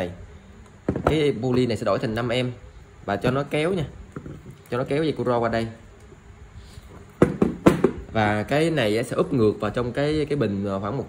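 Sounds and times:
sharp knocks on workbench: 0.8 - 1.2, 7.2 - 8.0.

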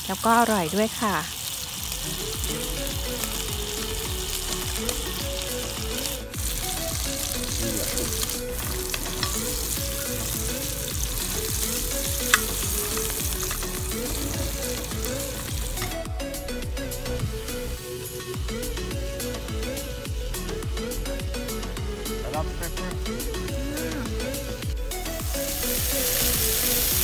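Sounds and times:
food sizzling in a pan: 0.0 - 21.0, 25.1 - 27.0
metal fork clicking against pan: 9.2 - 9.6.

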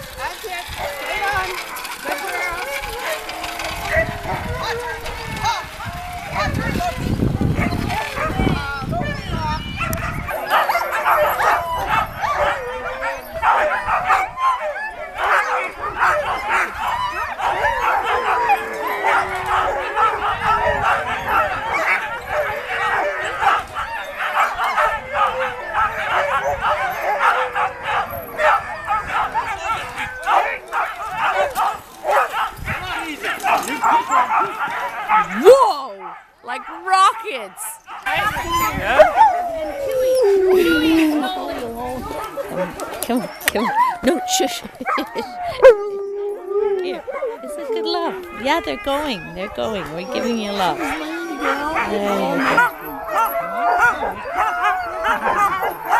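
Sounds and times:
sled dogs barking and howling: 0.0 - 55.9.

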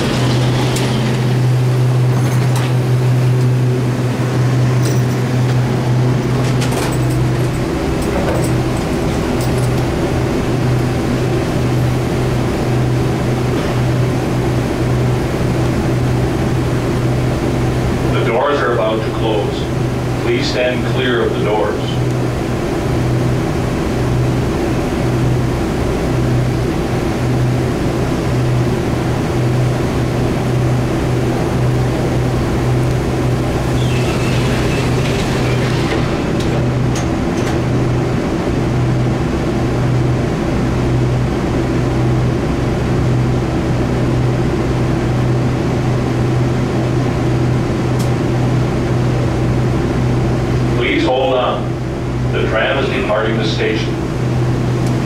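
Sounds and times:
tram rumbling in tunnel: 0.0 - 55.0.

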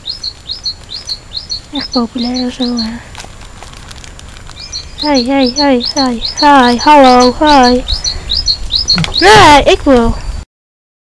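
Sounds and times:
low background noise: 0.0 - 10.4
goats mouthing plastic packet: 2.8 - 4.6.

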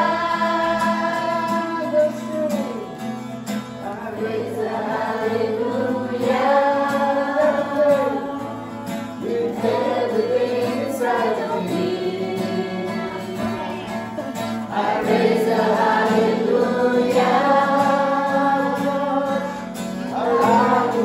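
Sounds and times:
choir singing worship song: 0.0 - 21.0.

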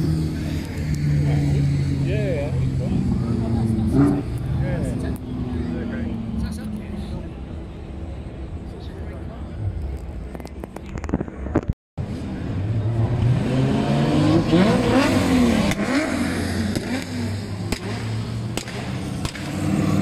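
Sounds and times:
cars driving past: 0.0 - 10.7, 12.0 - 20.0
people talking: 0.3 - 11.7.

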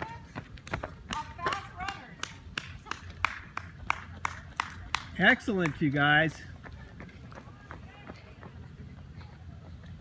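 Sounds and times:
running footsteps on asphalt: 0.0 - 10.0.

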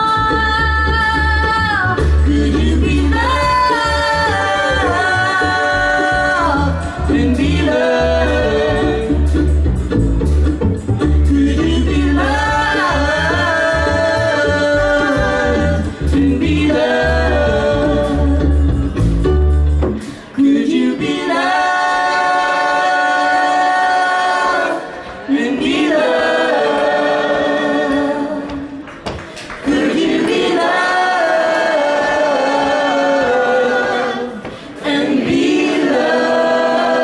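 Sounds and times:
upright bass line: 0.0 - 20.3
acoustic string band playing: 0.0 - 21.1
wordless vocal harmonies: 1.7 - 9.7, 11.2 - 19.1, 20.0 - 37.0.

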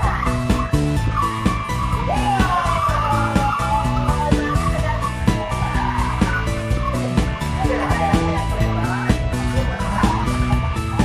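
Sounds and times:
music with steady beat: 0.0 - 11.0
tyres squealing: 0.0 - 11.0.

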